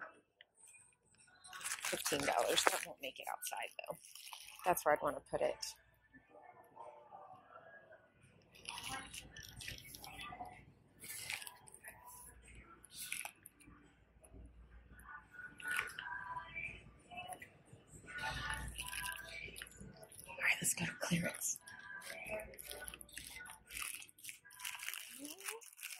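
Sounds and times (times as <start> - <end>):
indistinct background voices: 14.9 - 25.6.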